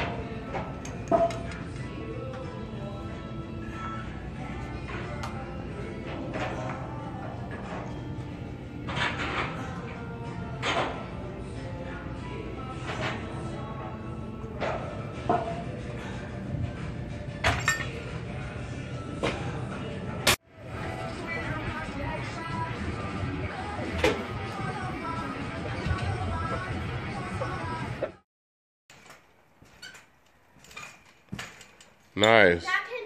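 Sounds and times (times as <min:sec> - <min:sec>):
gym background noise: 0:00.0 - 0:28.2.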